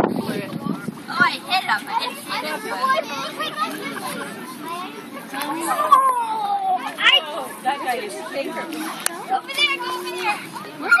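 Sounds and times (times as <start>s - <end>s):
children chattering and calling out: 0.0s - 11.0s.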